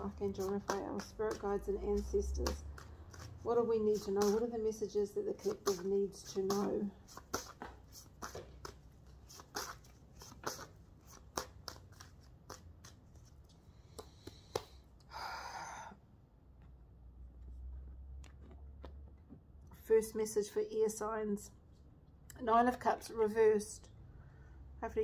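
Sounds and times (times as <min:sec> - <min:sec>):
cards being shuffled: 0:05.4 - 0:14.8.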